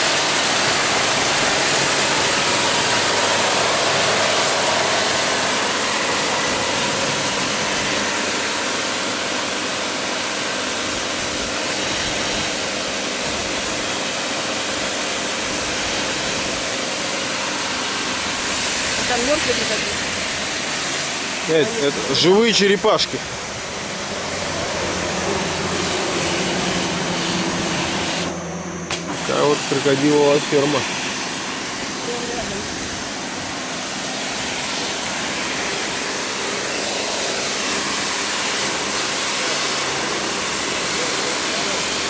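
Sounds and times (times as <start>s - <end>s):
pressure washer water spray hiss: 0.0s - 28.3s, 28.9s - 42.0s
machine whine: 0.0s - 42.0s.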